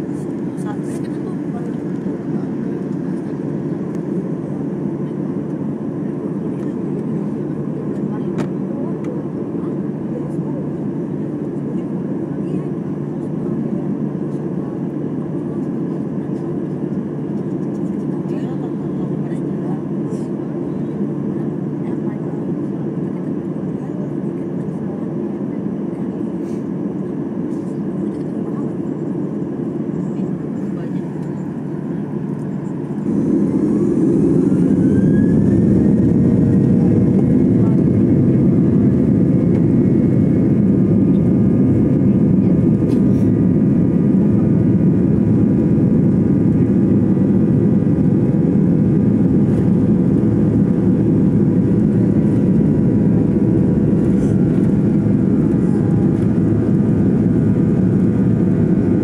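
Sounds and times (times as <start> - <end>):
jet engines heard from cabin: 0.0 - 59.0
engine whine rising in pitch: 33.0 - 38.6.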